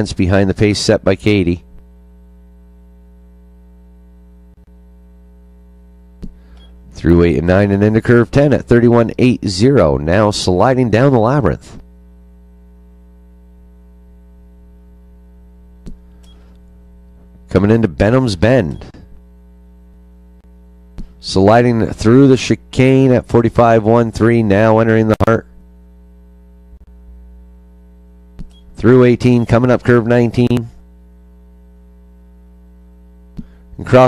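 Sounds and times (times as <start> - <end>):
electrical mains hum: 0.0 - 34.0.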